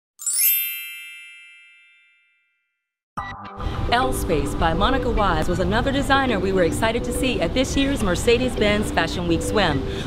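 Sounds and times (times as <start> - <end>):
bright bell-like chime: 0.2 - 2.9.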